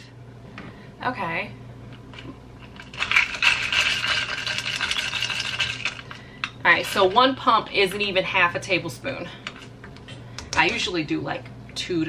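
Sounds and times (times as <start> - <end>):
milk frother whirring: 2.6 - 8.1.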